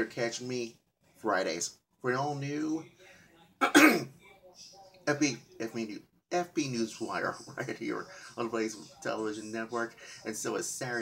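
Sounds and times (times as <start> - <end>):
man clearing his throat: 3.6 - 4.1.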